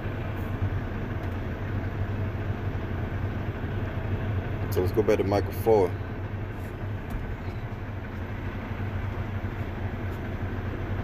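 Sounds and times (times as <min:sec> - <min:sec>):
low engine hum inside vehicle: 0:00.0 - 0:11.0.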